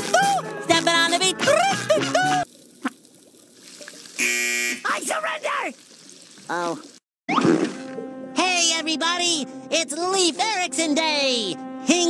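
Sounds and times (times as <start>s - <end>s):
buzzer tone: 4.2s - 4.9s.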